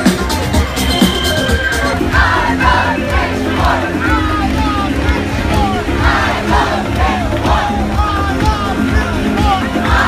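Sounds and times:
crowd shouting and cheering: 0.0 - 10.0
electronic dance music: 0.0 - 10.0
kick drum beat: 2.2 - 10.0.

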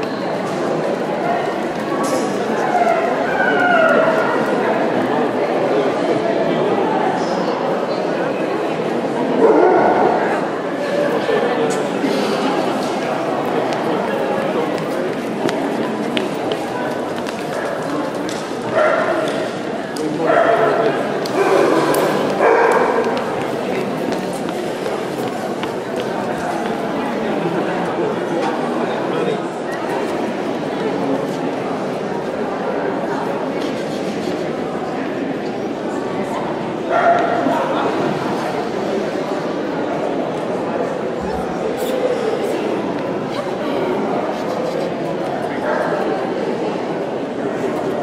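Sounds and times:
crowd chatter: 0.0 - 48.0
dog barking: 21.4 - 23.1.

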